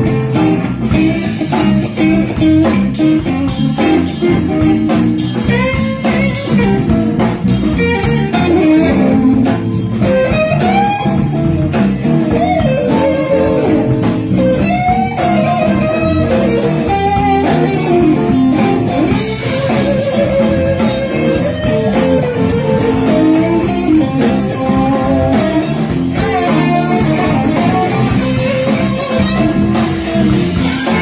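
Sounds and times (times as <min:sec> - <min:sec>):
bass guitar: 0:00.0 - 0:31.0
drum kit with cymbals: 0:00.0 - 0:31.0
lead electric guitar solo: 0:00.0 - 0:31.0.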